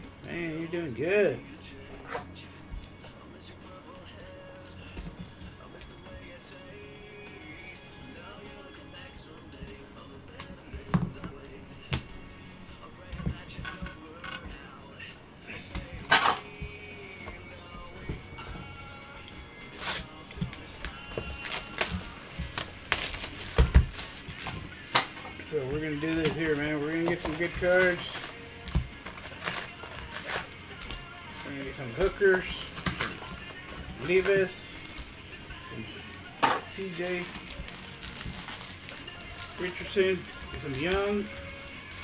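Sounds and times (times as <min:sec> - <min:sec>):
faint background music: 0:00.0 - 0:42.0
plastic wrap crinkling: 0:19.1 - 0:42.0.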